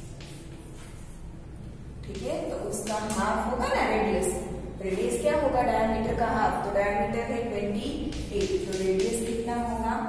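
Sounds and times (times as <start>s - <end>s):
steady low hum: 0.0s - 10.0s
woman speaking: 2.0s - 10.0s.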